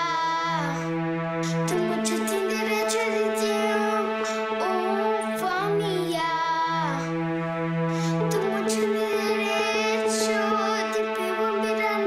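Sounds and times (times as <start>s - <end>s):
child singing: 0.0s - 7.1s, 8.3s - 12.0s
instrumental backing of held chords: 0.0s - 12.0s.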